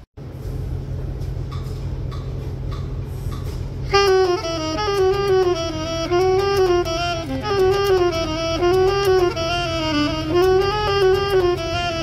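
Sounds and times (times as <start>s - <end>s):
saxophone held note: 3.9s - 12.0s.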